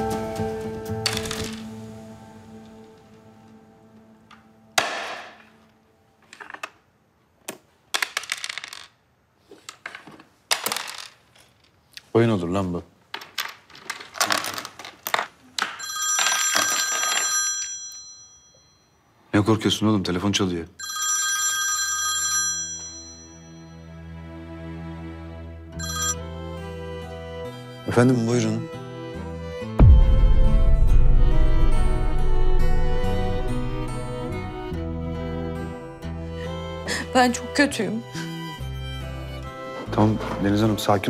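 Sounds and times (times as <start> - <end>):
background music: 0.0 - 6.6, 22.8 - 41.0
checkers and dice clacking on wood: 7.4 - 9.0, 9.6 - 11.8, 13.1 - 17.7
telephone ringing: 15.8 - 19.0, 20.8 - 23.9, 25.8 - 26.6.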